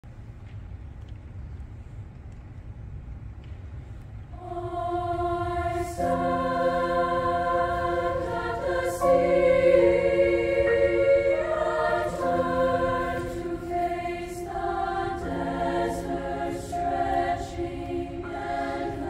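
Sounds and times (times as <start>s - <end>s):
treble choir singing: 4.4s - 19.0s
piano accompaniment: 5.1s - 19.0s.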